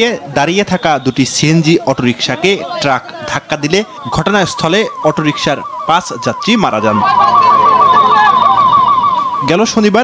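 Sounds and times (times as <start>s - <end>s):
siren warbling: 1.7s - 10.0s.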